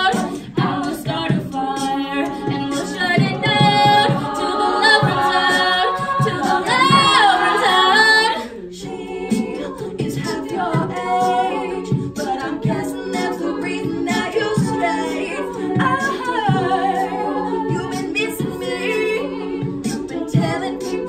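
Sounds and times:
female a cappella group singing: 0.0 - 21.0.

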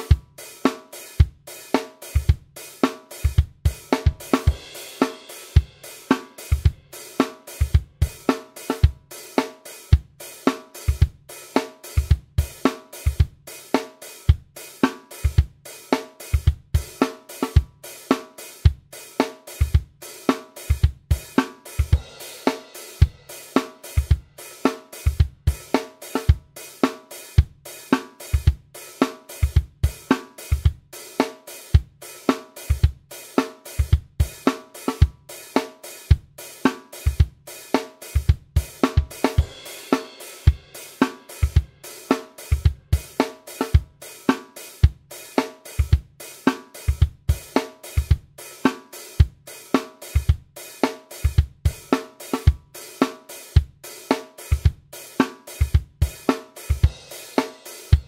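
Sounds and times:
disco-funk drum loop: 0.0 - 58.0.

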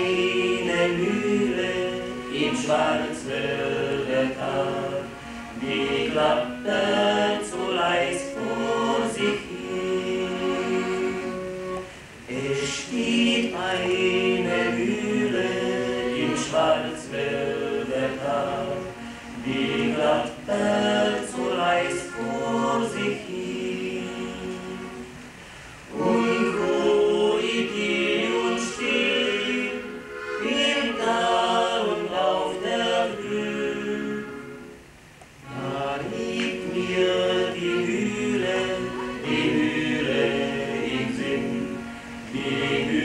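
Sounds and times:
male vocal quartet singing: 0.0 - 34.8, 35.4 - 43.0
accordion: 0.0 - 43.0.

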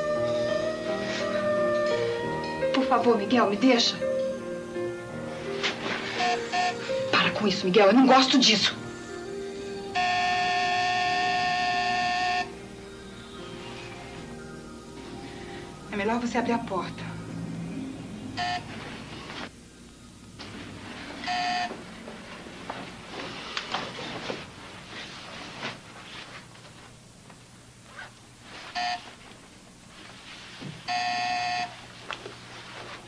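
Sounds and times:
electric doorbell buzzer: 6.1 - 7.1, 9.8 - 12.6, 18.4 - 18.8, 21.2 - 21.8, 28.8 - 29.1, 30.9 - 31.8
soft rustling of movement: 21.8 - 30.9, 31.8 - 33.0.

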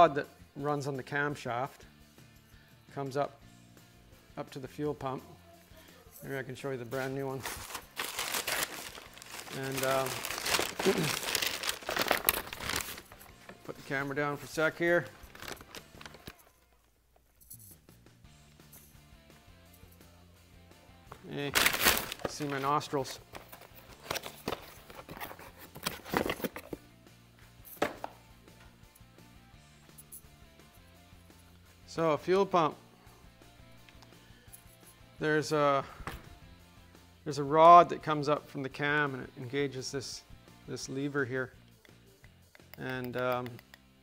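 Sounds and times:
package crinkling and rustling: 7.4 - 13.9, 15.0 - 16.6, 21.6 - 26.7
thump of object set down: 27.8 - 28.2.

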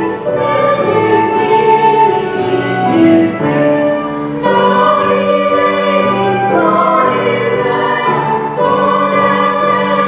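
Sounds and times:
choir singing a carol: 0.0 - 10.0
flute: 0.0 - 10.0
grand piano: 0.0 - 10.0.

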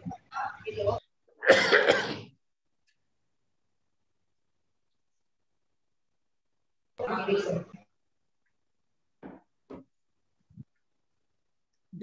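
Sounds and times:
person coughing: 1.4 - 2.3.

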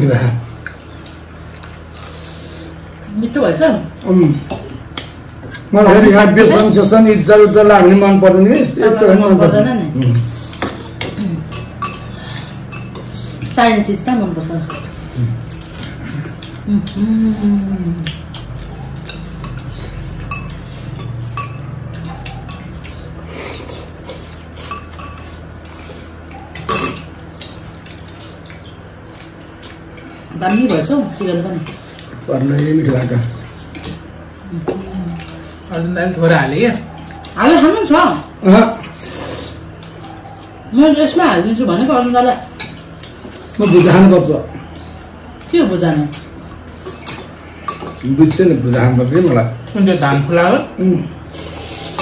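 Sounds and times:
steady low hum: 0.0 - 52.0
forks clinking on glass bowls: 10.6 - 13.1, 14.4 - 15.7, 18.6 - 22.9, 24.1 - 25.8, 26.5 - 27.2, 27.8 - 34.0, 41.7 - 45.5, 46.1 - 50.8
cutlery clinking on glass: 43.5 - 44.1.

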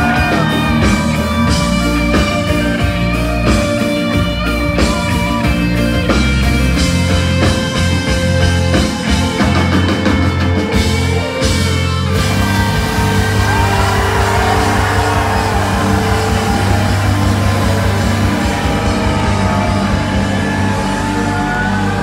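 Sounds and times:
live band amplified music: 0.0 - 22.0.

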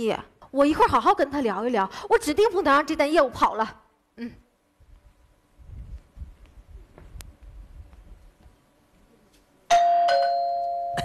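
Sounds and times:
doorbell ding-dong: 9.7 - 11.0.

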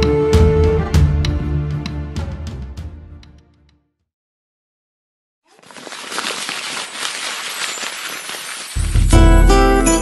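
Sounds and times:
rush of tiny clinks and crackles: 5.5 - 9.1.

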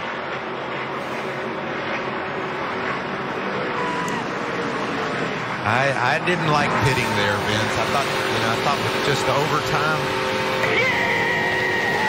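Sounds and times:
racing truck engines passing: 0.0 - 12.0.

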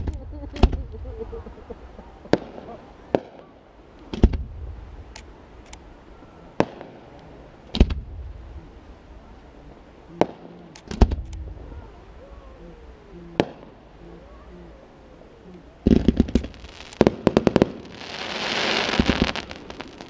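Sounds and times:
firework shells bursting: 15.8 - 20.0.

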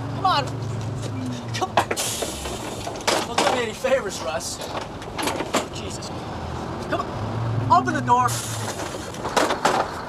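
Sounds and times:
indistinct voices: 0.0 - 8.8.

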